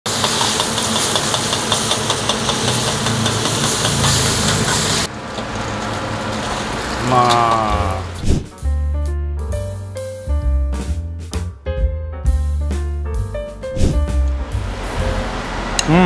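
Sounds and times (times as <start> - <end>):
metal spatula scraping wok: 0.1 - 7.0
sauce sizzling in wok: 0.1 - 8.2
gas burner roaring: 0.1 - 8.5, 14.2 - 16.0.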